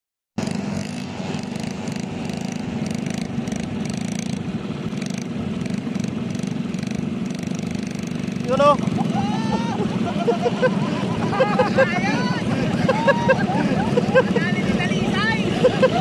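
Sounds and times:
quad bike engine running: 0:00.4 - 0:16.0.

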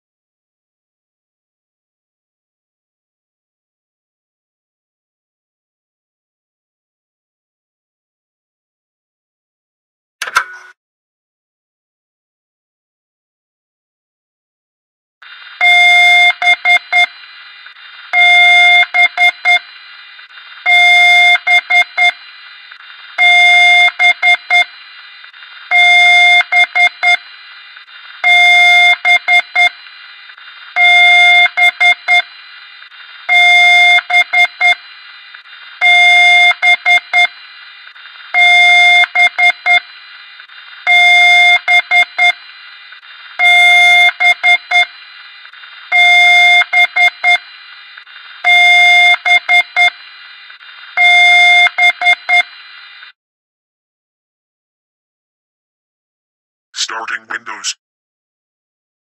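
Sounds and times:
short electronic clicks: 0:10.2 - 0:10.8.

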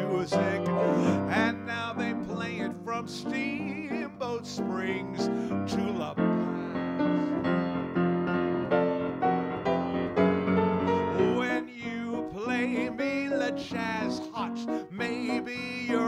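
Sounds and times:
man singing: 0:00.0 - 0:07.3, 0:10.9 - 0:16.0
jazz piano chords: 0:00.0 - 0:16.0.

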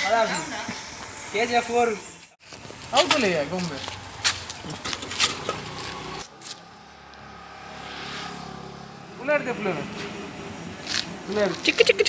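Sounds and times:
steady vehicle hum: 0:00.0 - 0:12.0
vehicle rushing by: 0:04.7 - 0:11.7.

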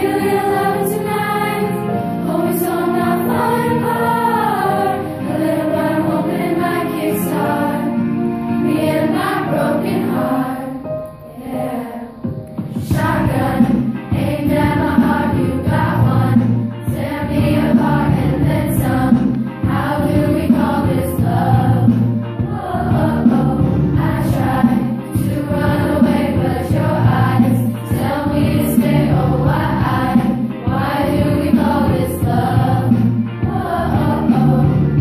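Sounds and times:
girls' choir singing: 0:00.0 - 0:35.0.

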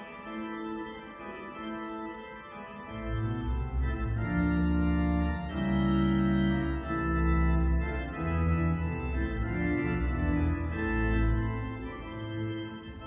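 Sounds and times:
pipe organ chords: 0:00.0 - 0:13.0.

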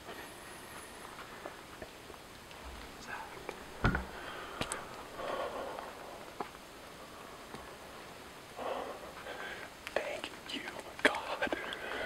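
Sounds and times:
man whispering: 0:02.9 - 0:03.7, 0:09.8 - 0:12.0.

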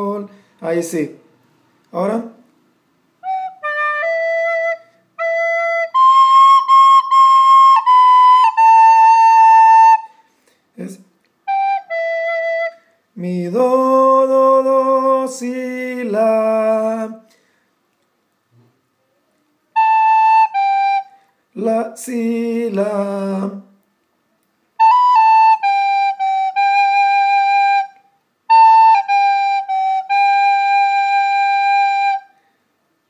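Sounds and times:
recorder playing slow melody: 0:03.2 - 0:10.1, 0:19.7 - 0:21.1, 0:24.8 - 0:32.3.

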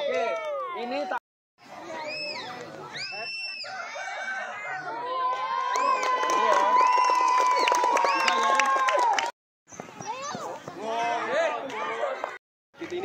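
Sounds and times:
children shouting and cheering: 0:00.0 - 0:01.0, 0:01.8 - 0:09.3.

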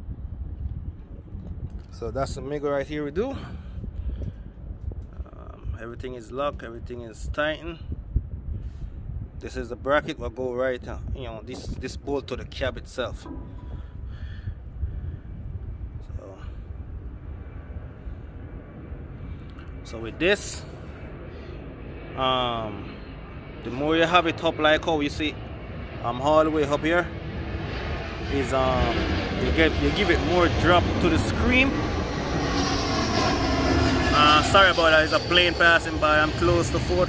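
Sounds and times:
jet airplane flying over: 0:00.0 - 0:37.0.

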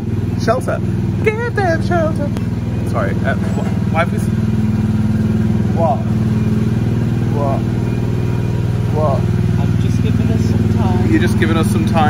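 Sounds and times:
small petrol engine droning: 0:00.0 - 0:12.0.

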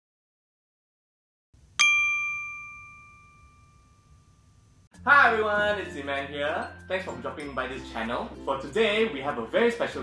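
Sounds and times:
bell ding: 0:01.8 - 0:04.6.

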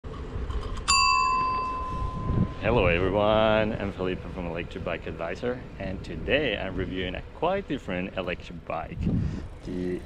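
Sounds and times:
wind and road rumble: 0:00.0 - 0:10.0
bicycle bell ding: 0:00.8 - 0:02.7.

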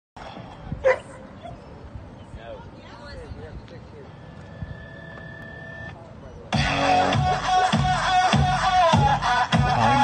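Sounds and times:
outdoor background noise: 0:00.2 - 0:10.0
dog barking: 0:00.8 - 0:01.2.

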